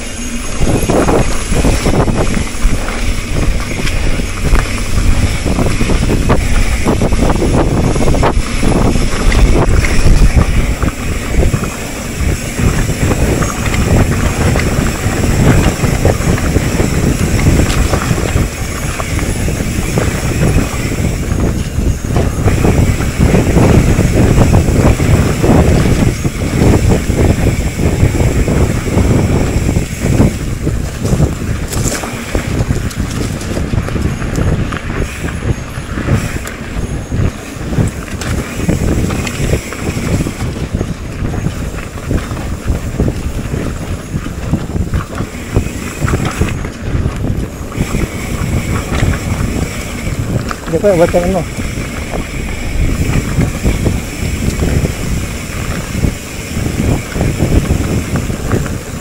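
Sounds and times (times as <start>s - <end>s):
bike rattling on dirt trail: 0.0s - 59.0s
wind buffeting microphone: 0.0s - 59.0s.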